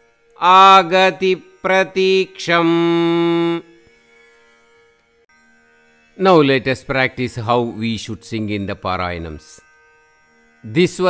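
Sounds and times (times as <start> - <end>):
droning background music: 0.0 - 11.0.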